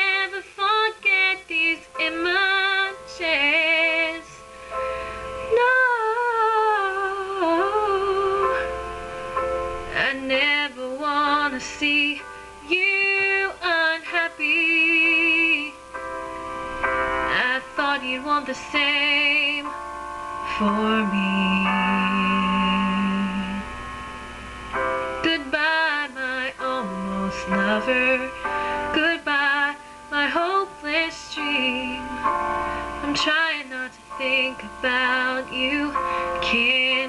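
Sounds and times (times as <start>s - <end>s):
woman singing long note with vibrato: 0.0s - 4.4s, 5.5s - 9.1s, 9.9s - 15.9s, 17.3s - 24.0s, 25.0s - 37.0s
piano backing track: 0.0s - 37.0s
woman singing long note: 20.5s - 23.8s, 25.2s - 32.4s.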